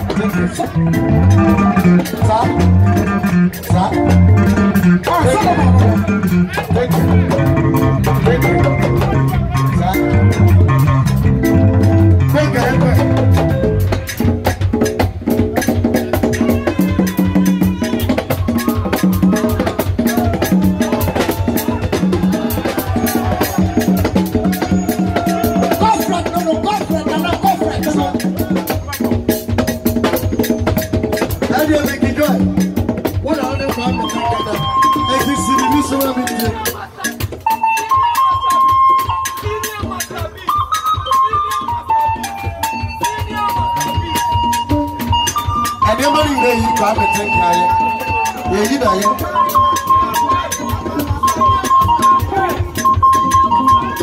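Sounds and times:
electronic keyboard melody: 0.0 - 14.1, 37.4 - 54.0
repeating bass notes: 0.0 - 14.3
keyboard: 0.0 - 16.4
electric guitar: 0.0 - 39.9
congas played by hand: 0.0 - 54.0
steady percussion beat: 0.0 - 54.0.

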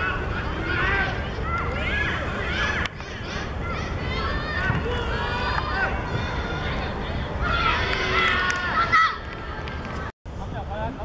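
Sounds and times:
people shouting: 0.0 - 9.3.

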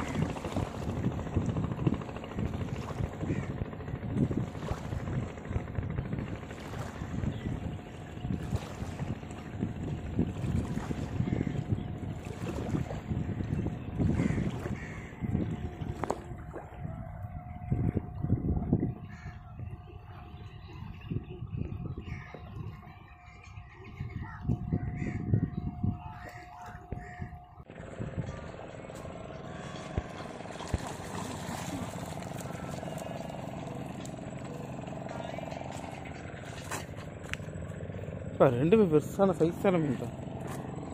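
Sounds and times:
engine drone: 0.0 - 40.9
wind buffeting microphone: 0.0 - 40.9.

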